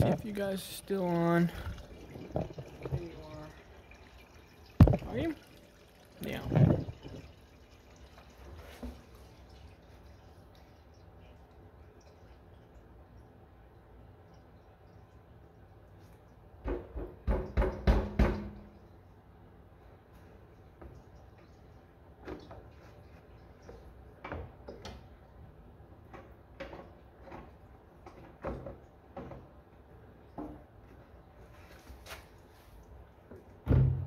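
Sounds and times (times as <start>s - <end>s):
fuel trickling into can: 1.3s - 16.4s.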